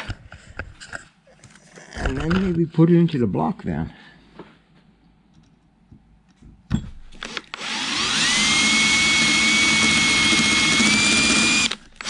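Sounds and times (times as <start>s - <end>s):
cordless drill boring metal: 7.2s - 12.0s.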